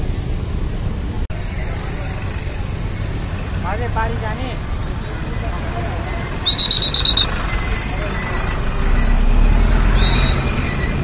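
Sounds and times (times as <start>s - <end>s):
bus engine rumbling: 0.0s - 11.0s.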